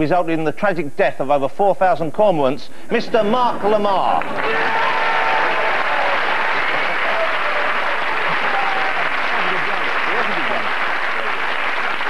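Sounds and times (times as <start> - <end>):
audience applauding: 3.6 - 12.0.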